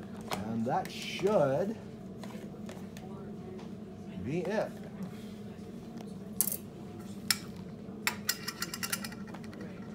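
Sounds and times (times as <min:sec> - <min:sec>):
steady low hum: 0:00.0 - 0:09.9.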